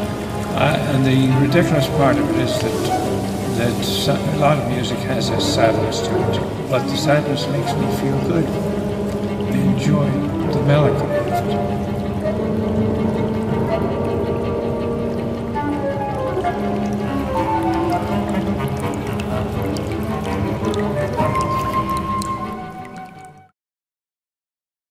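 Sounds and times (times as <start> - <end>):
cello playing held notes: 0.0 - 23.4
chamber ensemble music: 0.0 - 23.5.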